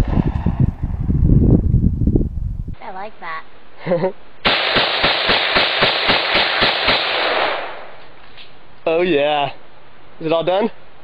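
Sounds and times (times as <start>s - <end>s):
rifle firing rapid burst: 4.4s - 7.6s.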